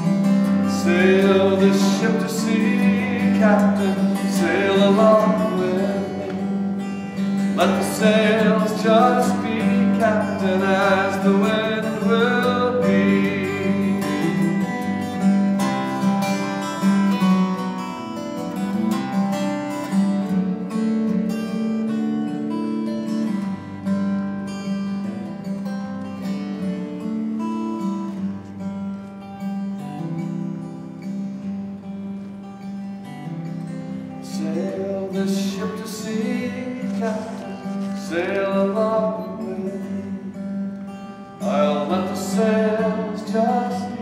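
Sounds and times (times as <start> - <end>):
acoustic guitar strumming: 0.0 - 44.0
person singing: 0.7 - 14.8, 34.3 - 40.3, 41.4 - 44.0.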